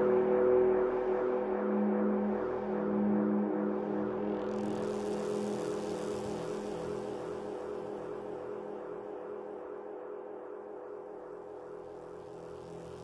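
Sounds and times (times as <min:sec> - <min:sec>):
drone of low held tones: 0:00.0 - 0:13.0.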